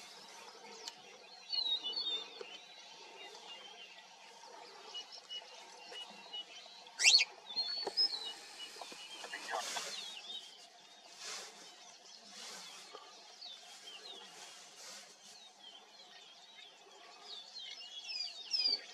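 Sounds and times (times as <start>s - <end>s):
birds chirping and calling: 0.0s - 18.9s.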